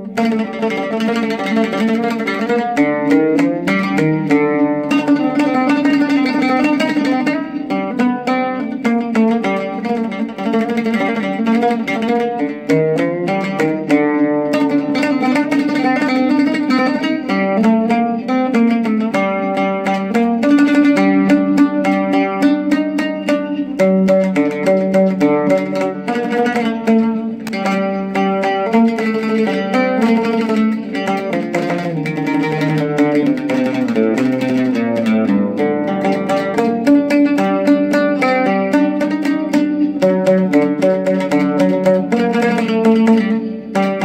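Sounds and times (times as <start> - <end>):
oud melody: 0.0 - 44.0.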